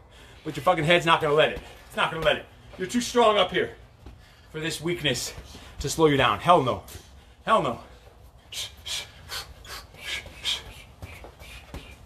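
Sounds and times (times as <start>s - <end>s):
man's sharp hissing exhales: 8.5s - 11.8s.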